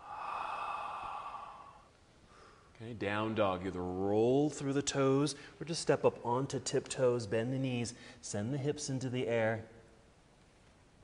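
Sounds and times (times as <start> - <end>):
person breathing out: 0.0 - 2.7.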